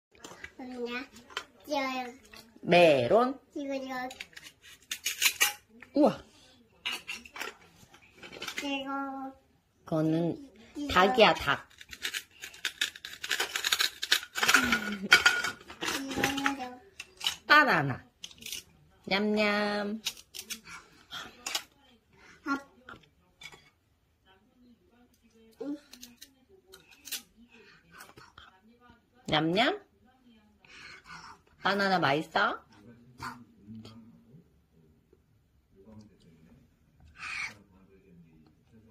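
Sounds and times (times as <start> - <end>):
hook-and-loop rasping rips: 11.6 - 14.7.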